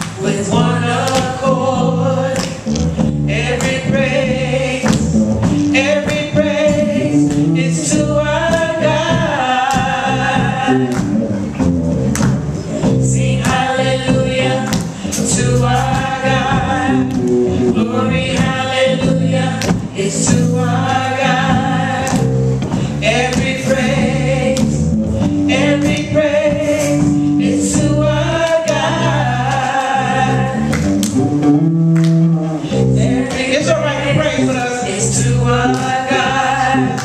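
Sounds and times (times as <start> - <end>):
drums: 0.0 - 37.0
group singing gospel song: 0.0 - 37.0.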